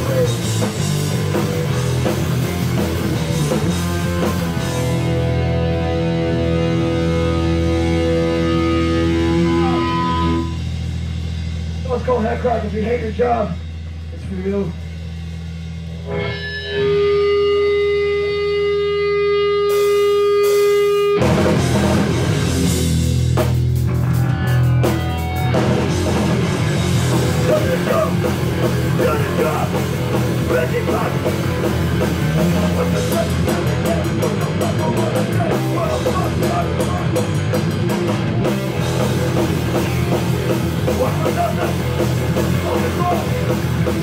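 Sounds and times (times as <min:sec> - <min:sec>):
electric guitar feedback tone: 0:00.0 - 0:11.4, 0:15.6 - 0:44.0
drum kit beat: 0:00.0 - 0:18.0, 0:19.6 - 0:44.0
electric bass: 0:00.0 - 0:44.0
low amp hum: 0:00.0 - 0:44.0.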